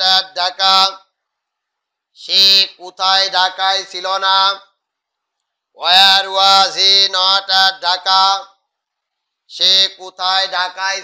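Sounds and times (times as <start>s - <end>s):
man chanting: 0.0s - 1.0s, 2.2s - 4.7s, 5.8s - 8.5s, 9.5s - 11.0s.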